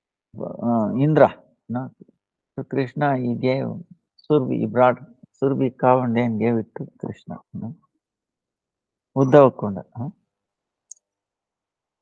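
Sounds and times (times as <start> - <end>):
man speaking: 0.4 - 2.0, 2.6 - 7.8, 9.2 - 10.2.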